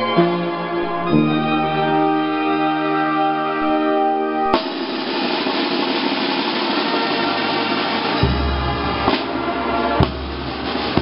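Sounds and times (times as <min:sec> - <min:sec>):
clash cymbals ringing: 0:04.5 - 0:11.0
snare drum roll: 0:04.5 - 0:11.0.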